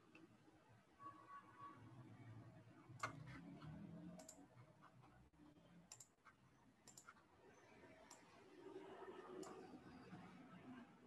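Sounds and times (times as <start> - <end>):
computer mouse clicks: 3.0 - 4.5, 5.9 - 7.2, 9.4 - 9.8.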